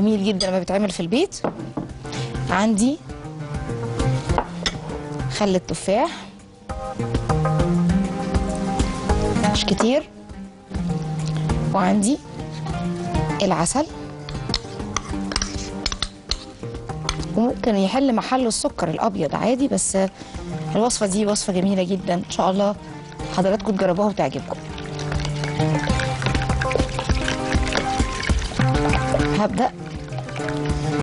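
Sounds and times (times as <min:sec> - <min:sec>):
background music with held notes: 0:00.0 - 0:31.0
dishes and utensils clinking: 0:14.3 - 0:16.5
metal spoon clinking bowls: 0:14.3 - 0:16.5, 0:23.4 - 0:30.7
honey being scraped: 0:14.3 - 0:16.6, 0:20.0 - 0:31.0.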